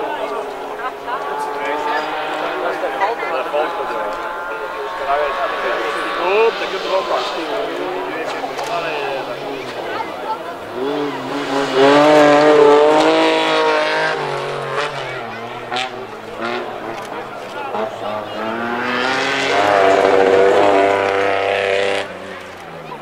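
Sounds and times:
rally cars passing at speed: 0.0s - 23.0s.

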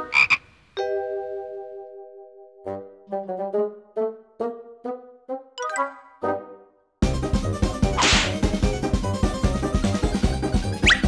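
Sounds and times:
cartoon frog croaking: 0.0s - 0.5s.

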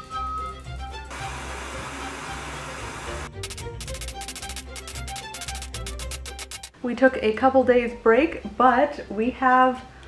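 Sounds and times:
background music: 0.0s - 10.0s
gas torch flame hissing: 1.1s - 3.6s
quick even tapping beat: 3.3s - 6.7s.

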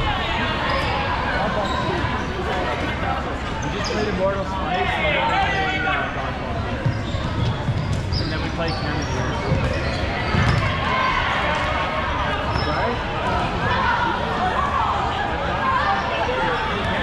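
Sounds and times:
players shouting and chattering: 0.0s - 17.0s
balls thudding on gym floor: 9.4s - 10.8s.

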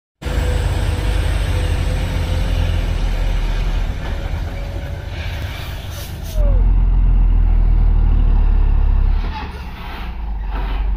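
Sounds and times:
diesel truck engine rumble: 0.2s - 10.9s.

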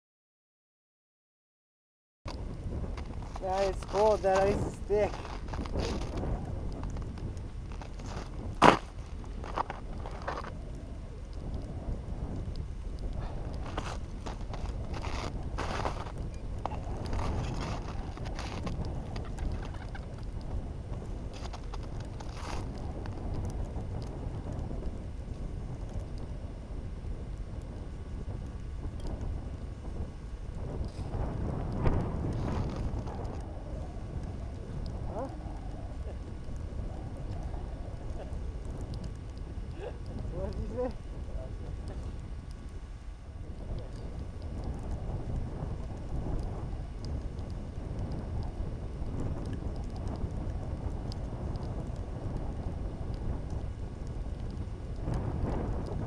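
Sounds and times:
wind buffeting microphone: 2.3s - 56.0s.

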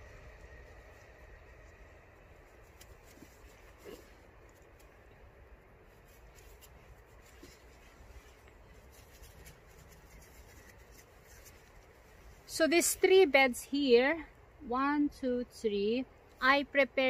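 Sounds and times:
low background rumble: 0.0s - 17.0s
hands scratching in soil: 1.6s - 13.2s.

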